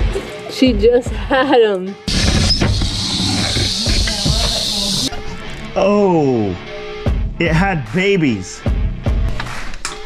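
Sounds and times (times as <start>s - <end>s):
background music: 0.0s - 10.0s
rattlesnake rattling: 2.1s - 5.1s.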